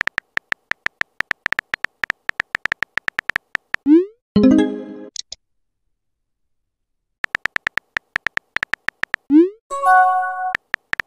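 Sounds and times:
phone keyboard key clicks: 0.0 - 3.8, 7.2 - 9.3, 10.6 - 11.0.

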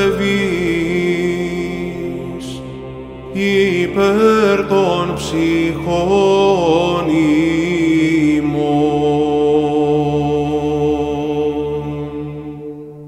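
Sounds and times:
chant on a long held note: 0.0 - 13.0
low vocal drone: 0.0 - 13.0.

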